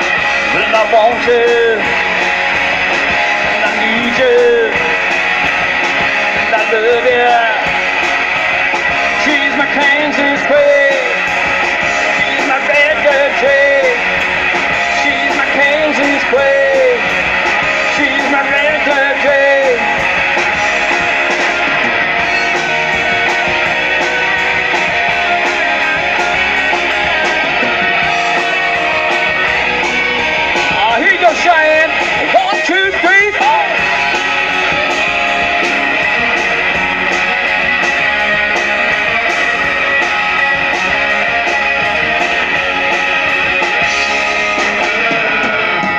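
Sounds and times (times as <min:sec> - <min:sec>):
live rock band playing: 0:00.0 - 0:45.9
wavering lead guitar: 0:00.0 - 0:45.9.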